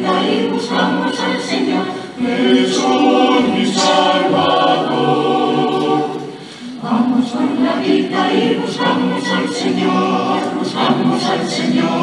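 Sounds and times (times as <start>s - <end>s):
mixed choir singing a cappella: 0.0s - 12.0s.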